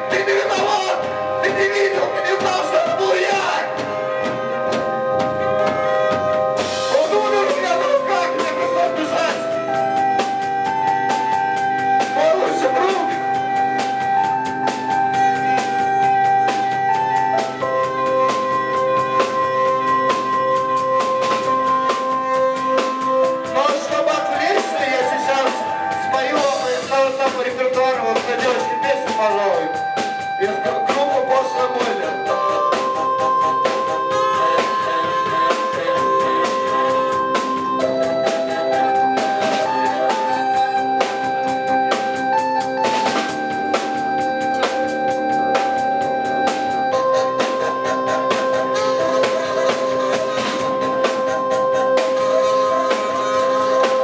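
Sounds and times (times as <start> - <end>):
keyboard chords: 0.0 - 54.0
drums and cymbals: 2.4 - 54.0
wavering pitch-bending lead line: 29.5 - 54.0.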